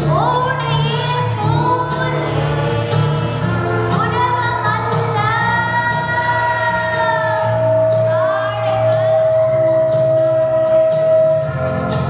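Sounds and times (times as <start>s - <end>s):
girl singing into a microphone: 0.0s - 3.3s, 3.9s - 11.6s
backing music: 0.0s - 12.0s.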